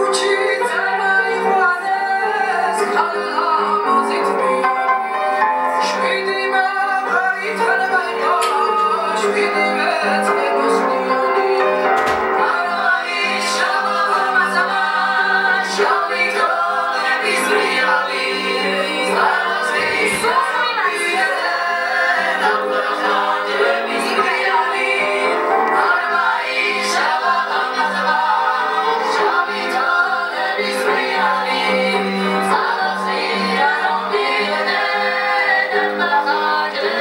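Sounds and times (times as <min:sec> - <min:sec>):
voices singing in harmony: 0:00.0 - 0:37.0
keyboard playing: 0:00.8 - 0:37.0.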